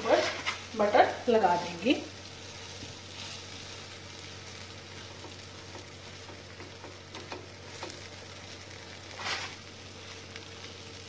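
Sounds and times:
sandwich sizzling in butter: 0.0s - 11.0s.

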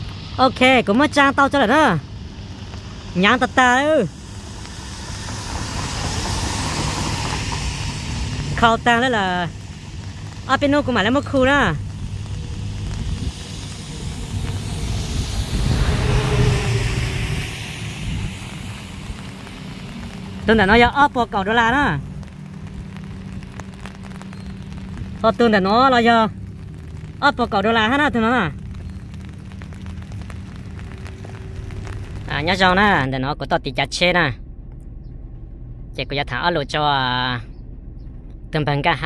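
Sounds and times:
vehicle passing on road: 0.0s - 39.0s
wind rumble on microphone: 0.0s - 39.0s.

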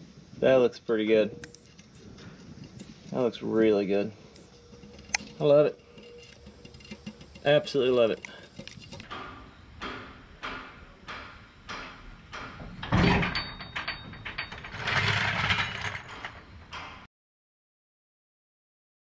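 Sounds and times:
noisy handling sounds: 1.1s - 17.1s.

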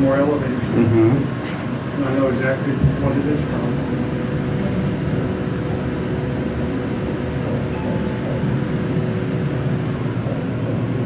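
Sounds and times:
ventilation fan whirring: 0.0s - 11.0s
low steady hum: 3.7s - 11.0s
short high electronic tone: 7.7s - 9.0s.

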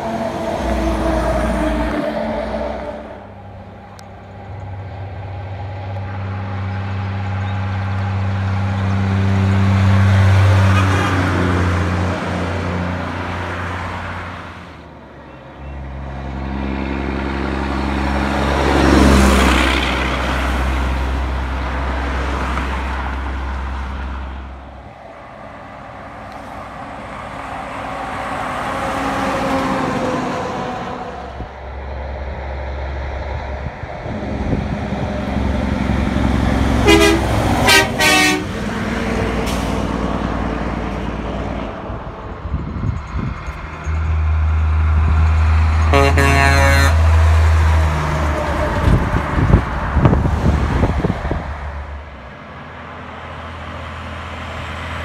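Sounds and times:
truck air horn: 0.0s - 3.5s, 10.6s - 11.5s, 36.8s - 38.6s, 45.8s - 47.2s
truck diesel engine passing: 0.0s - 55.0s.

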